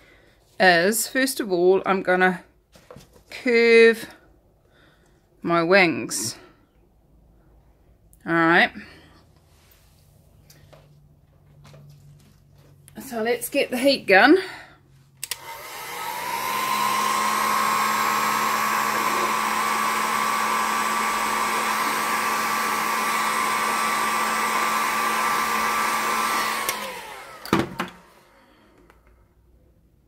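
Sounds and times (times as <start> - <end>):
heat gun switch click: 15.2 - 15.6
heat gun blowing whine: 15.2 - 28.4.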